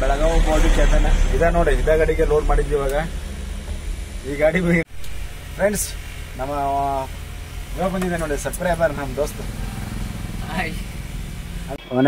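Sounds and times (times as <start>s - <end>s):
engine idling: 0.0s - 11.8s.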